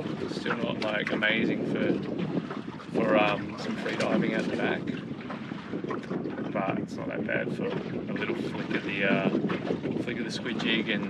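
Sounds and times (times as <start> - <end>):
water slapping against hull: 0.0 - 11.0
wind buffeting microphone: 0.0 - 11.0.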